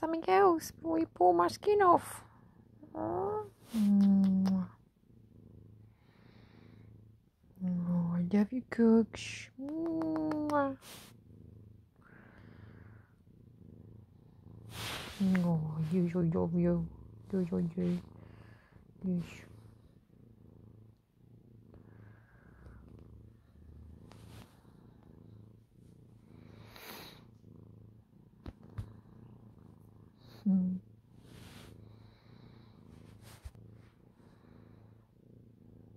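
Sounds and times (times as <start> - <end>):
cat purring: 0.0 - 35.9.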